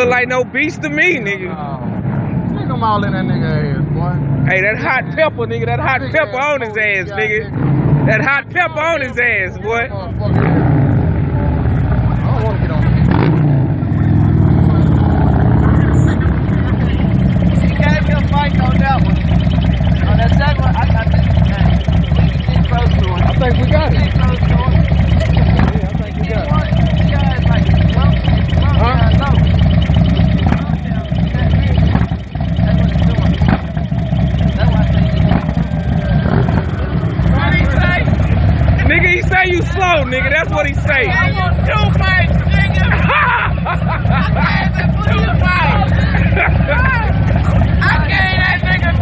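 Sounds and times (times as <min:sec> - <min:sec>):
men's voices: 0:00.0 - 0:49.0
motorcycle engine running: 0:00.0 - 0:49.0.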